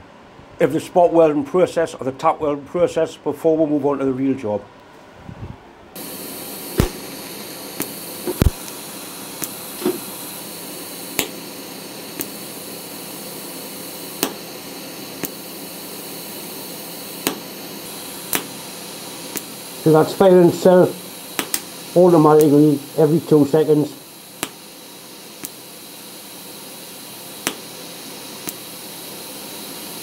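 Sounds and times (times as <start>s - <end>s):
welder hissing: 6.0s - 30.0s
sharp clicks: 6.8s - 8.8s, 11.1s - 11.4s, 14.2s - 14.4s, 17.2s - 17.5s, 18.3s - 18.6s, 21.4s - 21.8s, 24.4s - 24.6s, 25.4s - 25.6s, 27.4s - 27.7s.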